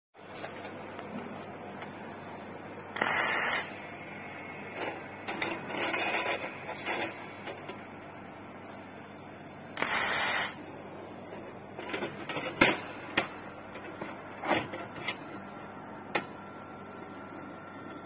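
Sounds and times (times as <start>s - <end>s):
laser welding gun hissing burst: 2.9s - 4.8s, 9.7s - 10.6s
crackles and sharp clicks: 9.8s - 10.6s.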